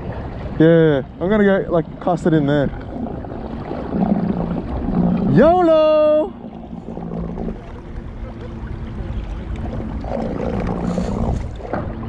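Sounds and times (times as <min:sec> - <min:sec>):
water lapping around kayak: 0:00.0 - 0:12.0
wind buffeting microphone: 0:00.0 - 0:12.0.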